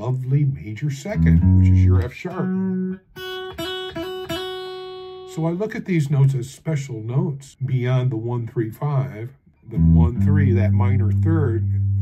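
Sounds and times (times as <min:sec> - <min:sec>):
clean electric guitar notes: 0:01.2 - 0:05.3, 0:09.6 - 0:12.0.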